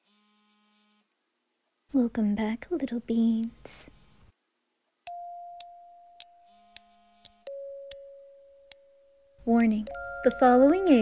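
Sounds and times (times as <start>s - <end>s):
soft synthesized chime notes: 5.1s - 9.3s, 9.9s - 11.0s.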